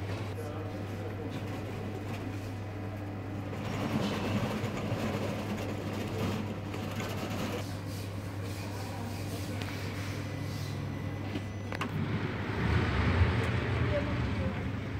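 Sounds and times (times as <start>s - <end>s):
printer machine hum: 0.0s - 14.9s
printer mechanical noise: 0.1s - 12.2s.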